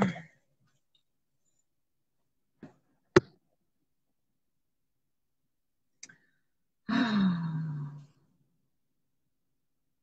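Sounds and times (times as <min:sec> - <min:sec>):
woman sighing: 0:06.9 - 0:08.0.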